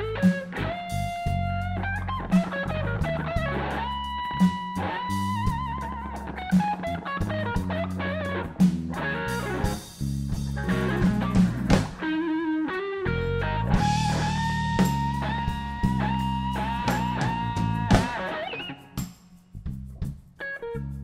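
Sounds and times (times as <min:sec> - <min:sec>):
electric guitar lead notes: 0:00.0 - 0:09.8, 0:10.4 - 0:19.0
bass line: 0:00.0 - 0:12.1, 0:13.0 - 0:18.5, 0:19.6 - 0:21.0
drum kit beat: 0:00.0 - 0:12.3, 0:13.4 - 0:21.0.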